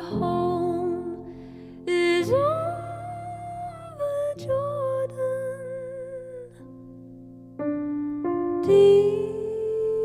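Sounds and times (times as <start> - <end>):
woman singing wordless notes: 0.0 - 1.3, 1.9 - 6.6, 8.6 - 10.0
piano chords: 0.0 - 10.0.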